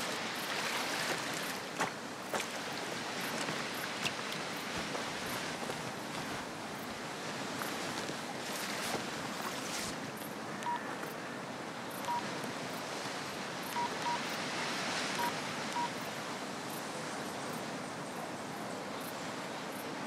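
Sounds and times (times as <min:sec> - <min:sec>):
sea surf: 0:00.0 - 0:20.0
phone keypad beeps: 0:10.6 - 0:10.8, 0:12.1 - 0:12.3, 0:13.8 - 0:14.2, 0:15.2 - 0:15.9.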